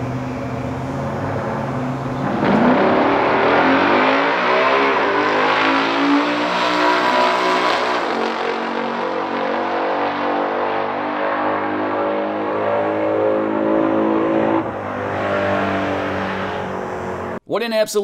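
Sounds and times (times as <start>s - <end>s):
car engines idling: 0.0s - 3.7s, 14.6s - 17.4s
car engines revving hard: 0.0s - 17.4s.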